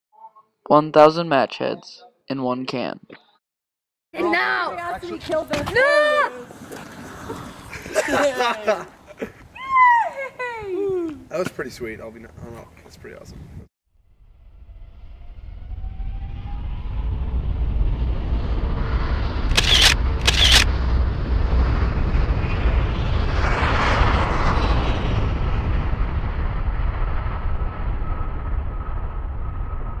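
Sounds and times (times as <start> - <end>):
sharp cracks: 19.4 - 20.8.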